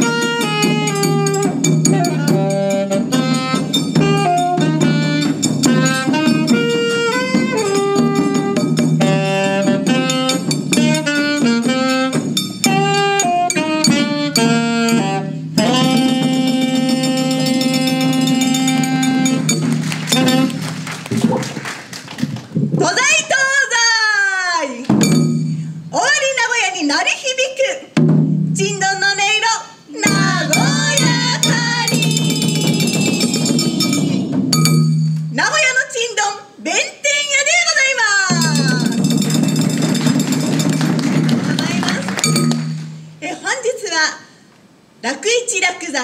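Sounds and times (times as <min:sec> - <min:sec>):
saxophone note: 0:00.0 - 0:20.8, 0:30.0 - 0:35.3
fast drum roll: 0:15.6 - 0:23.2, 0:30.1 - 0:34.8, 0:38.3 - 0:43.0
drum taps: 0:22.2 - 0:22.9.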